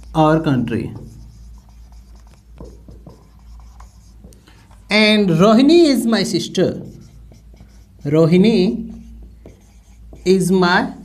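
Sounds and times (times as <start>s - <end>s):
marker pen writing on whiteboard: 0.0s - 11.0s.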